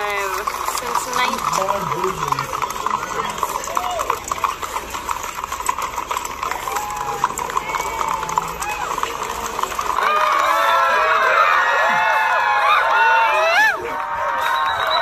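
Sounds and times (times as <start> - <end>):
horse hooves on paved street: 0.0 - 15.0
crowd cheering and shouting: 3.2 - 4.4, 6.4 - 15.0.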